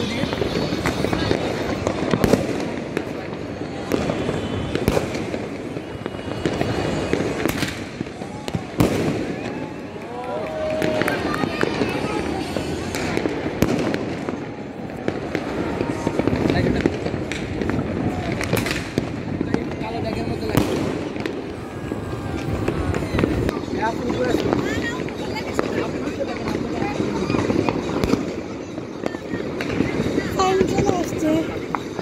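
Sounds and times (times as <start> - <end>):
fireworks bangs and pops: 0.0 - 32.0.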